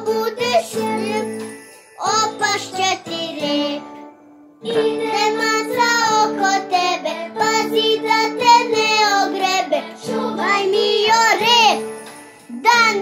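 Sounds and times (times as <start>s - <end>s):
girl singing: 0.0s - 13.0s.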